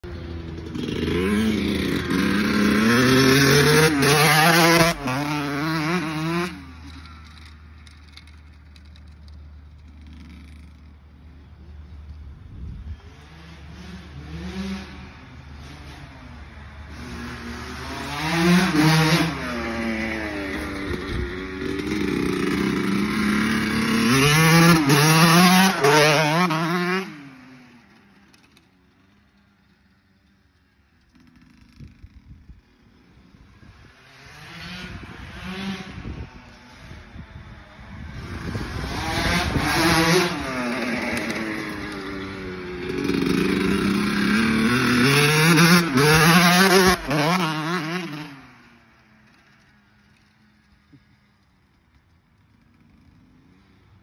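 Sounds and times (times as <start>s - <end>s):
dirt bike engine revving: 0.0s - 8.9s, 13.0s - 27.9s, 33.4s - 37.2s, 37.8s - 48.7s.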